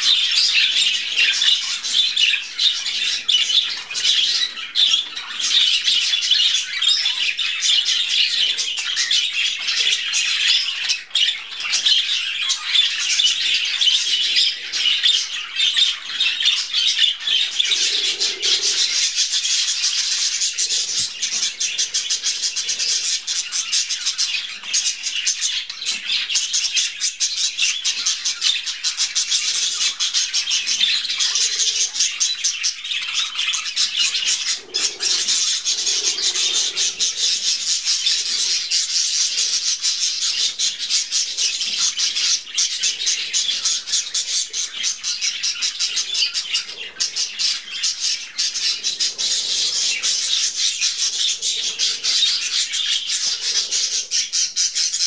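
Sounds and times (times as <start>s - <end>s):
budgerigars chattering: 0.0s - 55.0s.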